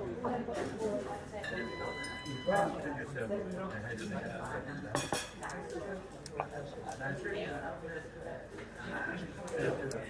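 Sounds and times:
background chatter: 0.0s - 10.0s
dishes and cutlery clattering: 4.9s - 5.4s.

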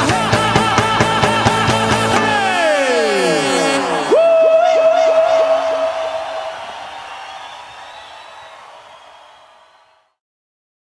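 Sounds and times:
live band playing: 0.0s - 4.4s
high tone with pitch dips: 2.2s - 7.9s.

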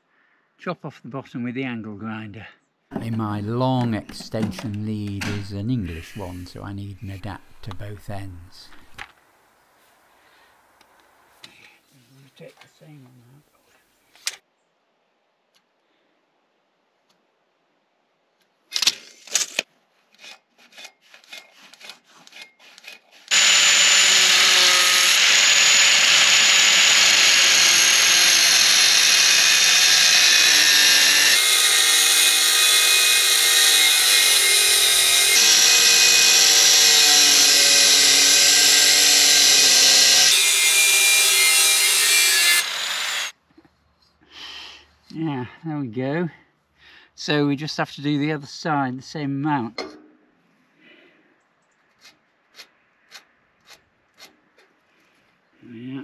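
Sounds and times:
angle grinder cutting steel: 20.8s - 43.4s.

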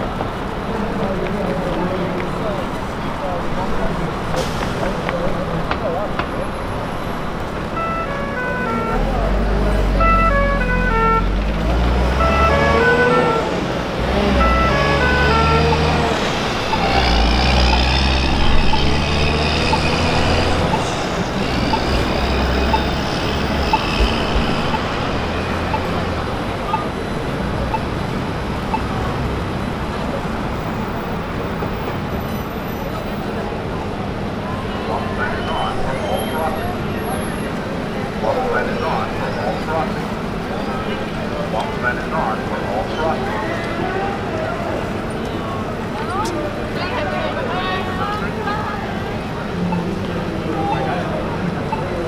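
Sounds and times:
crowd of pedestrians talking: 0.0s - 52.0s
traffic passing: 0.0s - 52.0s.

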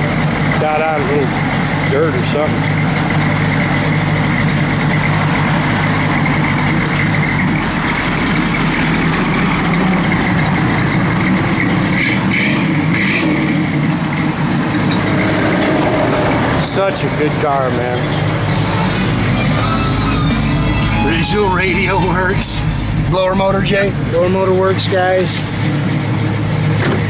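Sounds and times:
car engine idling with lope: 0.0s - 27.0s.

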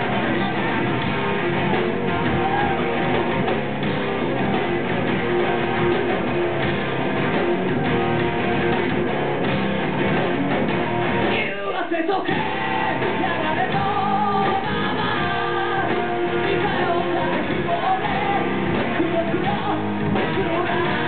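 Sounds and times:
rock band playing live: 0.0s - 21.0s.

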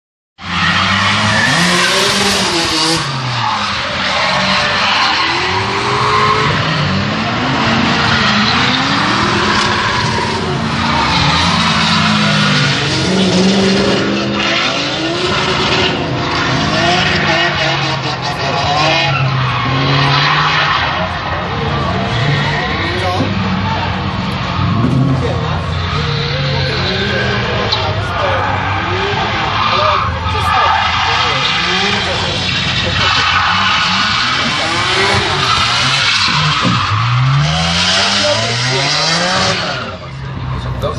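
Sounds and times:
car engines revving: 0.4s - 40.9s
tyres screeching: 0.4s - 40.9s.

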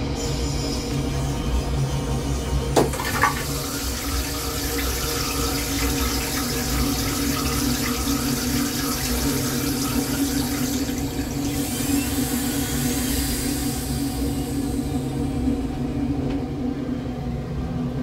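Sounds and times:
train rumble: 0.0s - 18.0s
toilet flushing: 2.6s - 15.6s.

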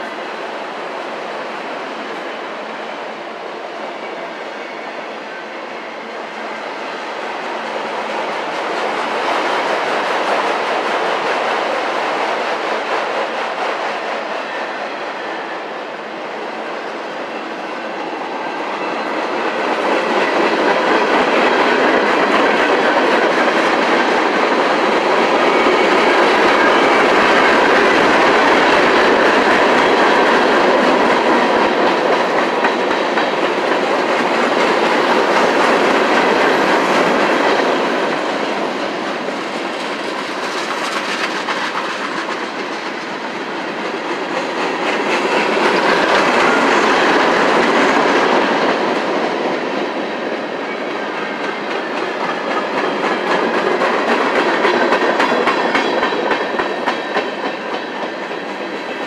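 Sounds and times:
train wheels clattering over rail joints: 18.9s - 59.0s.

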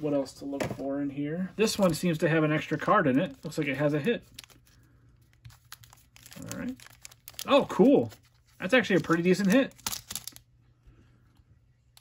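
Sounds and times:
trading cards rustling: 1.6s - 10.4s.

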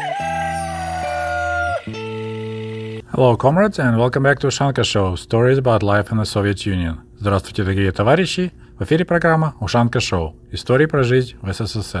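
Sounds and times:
music: 0.0s - 3.0s
rooster crowing: 0.0s - 3.0s.

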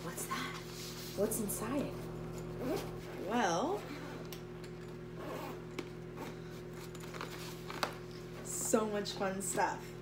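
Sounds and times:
zipper pulled open: 2.5s - 3.3s, 5.2s - 6.3s.

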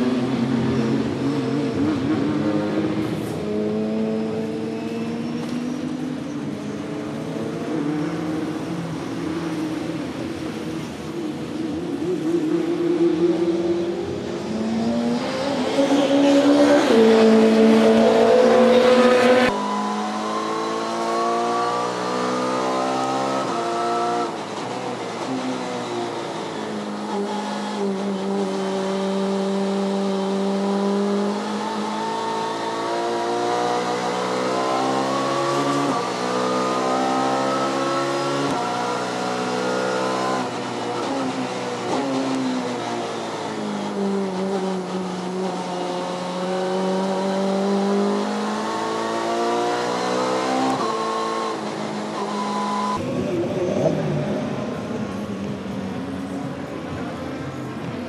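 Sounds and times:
racing car engine: 0.0s - 58.0s.

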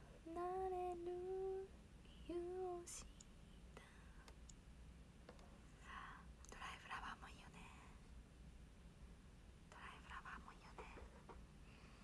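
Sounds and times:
woman whispering: 2.0s - 4.3s, 6.1s - 8.0s, 9.7s - 11.0s.

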